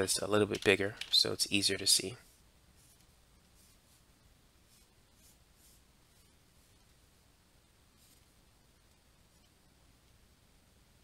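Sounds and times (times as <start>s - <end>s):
stylus scratching on a tablet: 1.7s - 7.0s, 7.9s - 8.4s.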